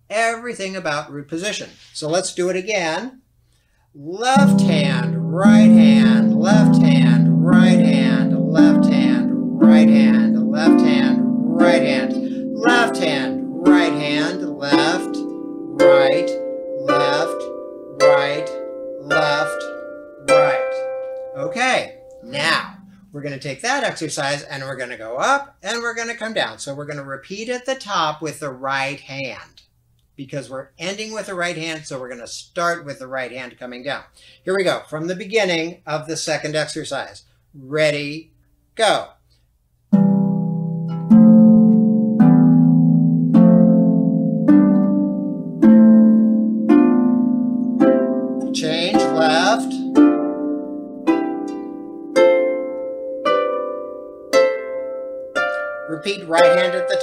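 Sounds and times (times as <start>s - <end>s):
harp chords plucked: 4.3s - 23.5s, 39.9s - 57.0s.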